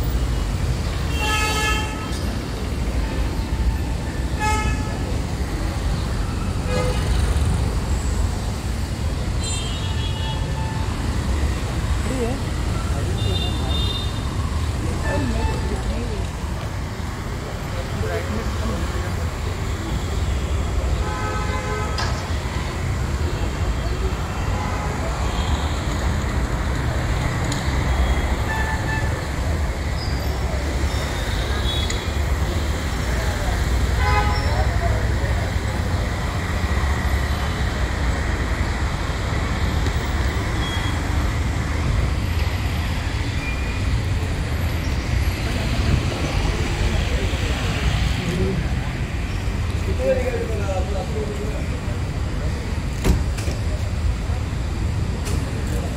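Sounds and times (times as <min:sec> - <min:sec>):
low traffic rumble: 0:00.0 - 0:55.9.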